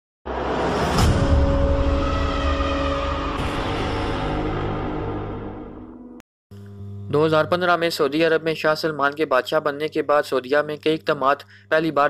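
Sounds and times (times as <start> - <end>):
sound effects and music: 0.3 - 6.2.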